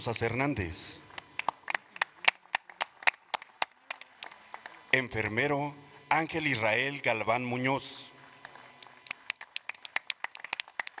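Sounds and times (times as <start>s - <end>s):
people clapping: 1.1s - 4.9s, 8.4s - 11.0s.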